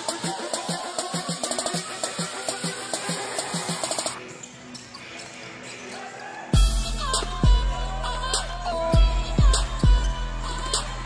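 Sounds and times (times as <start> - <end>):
music with steady beat: 0.0 - 11.0
bass-heavy music: 6.5 - 11.0.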